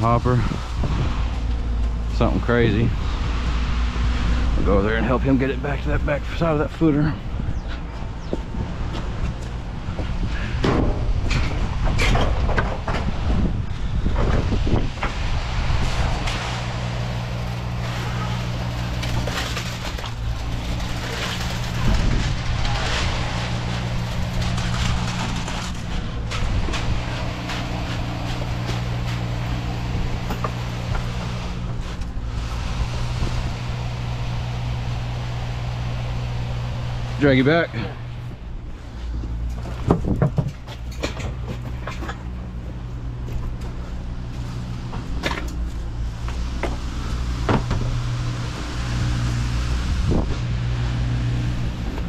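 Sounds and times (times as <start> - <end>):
concrete pump truck running: 0.0 - 52.0.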